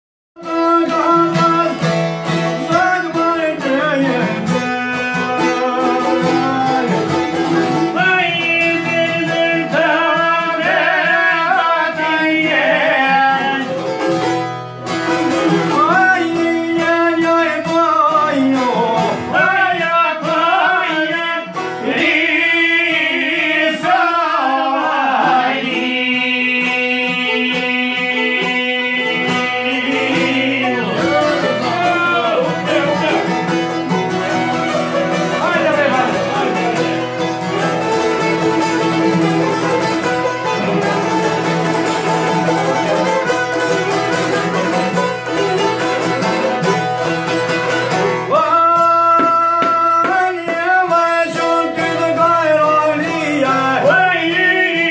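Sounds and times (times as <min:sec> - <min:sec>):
man singing: 0:00.4 - 0:14.0, 0:15.1 - 0:44.5, 0:47.9 - 0:54.9
plucked lutes: 0:00.4 - 0:54.9
violin: 0:24.8 - 0:54.4.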